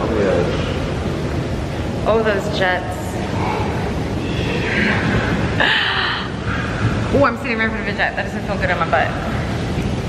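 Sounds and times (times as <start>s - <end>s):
hot tub jets bubbling water: 0.0s - 10.0s.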